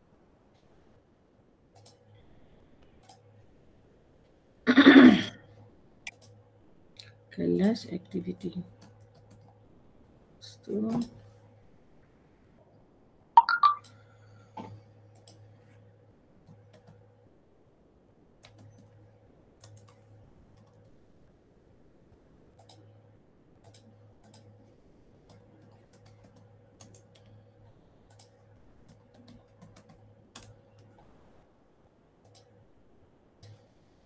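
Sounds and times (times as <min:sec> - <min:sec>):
low electrical hum: 0:00.0 - 0:34.0
keyboard typing: 0:03.0 - 0:03.3, 0:13.4 - 0:14.0, 0:16.4 - 0:17.0, 0:18.4 - 0:19.0, 0:19.6 - 0:21.0, 0:23.6 - 0:24.6, 0:25.3 - 0:27.4, 0:28.1 - 0:31.1.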